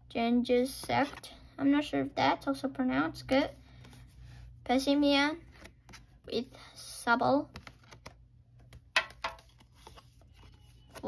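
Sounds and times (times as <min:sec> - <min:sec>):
cards tapping and rustling: 0:07.4 - 0:11.0.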